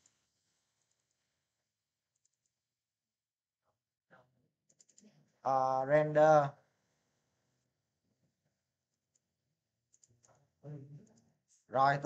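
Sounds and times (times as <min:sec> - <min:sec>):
faint clicks: 0:09.9 - 0:10.4.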